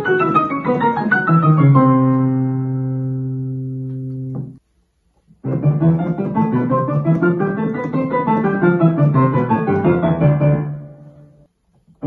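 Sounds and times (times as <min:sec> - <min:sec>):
digital piano low octave ringing: 0:00.0 - 0:04.6, 0:05.4 - 0:11.4.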